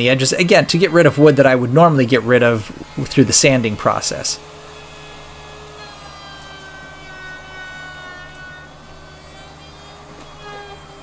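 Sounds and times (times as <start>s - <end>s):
trim router motor whine: 0.0s - 11.0s.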